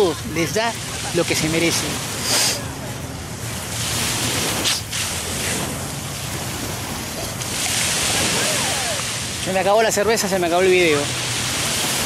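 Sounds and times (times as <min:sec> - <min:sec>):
surf washing onto sandy shore: 0:00.0 - 0:12.0
wind rumbling on microphone: 0:02.9 - 0:12.0.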